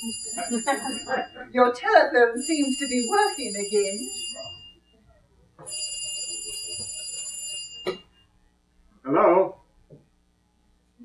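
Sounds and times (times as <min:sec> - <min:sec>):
telephone ringing: 0:00.0 - 0:01.5, 0:02.4 - 0:04.8, 0:05.7 - 0:08.2.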